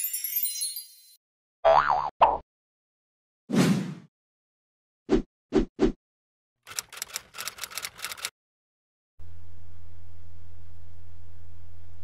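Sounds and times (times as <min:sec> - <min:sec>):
typewriter keystroke clicks: 0:06.7 - 0:08.3.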